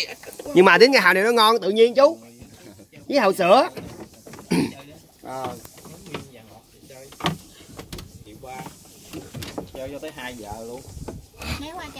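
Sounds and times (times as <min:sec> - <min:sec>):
voices talking: 0:00.0 - 0:11.9.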